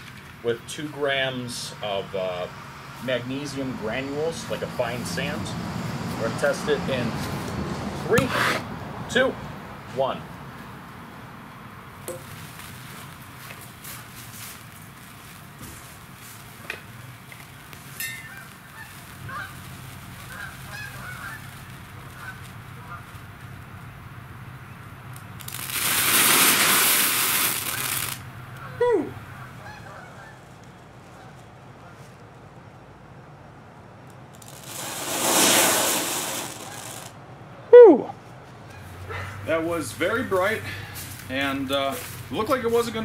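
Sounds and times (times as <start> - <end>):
loud rushing hiss of flare: 1.9 - 8.8, 13.8 - 23.9, 25.0 - 28.3, 34.3 - 37.2
sparks crackling: 12.1 - 28.7, 34.0 - 37.2.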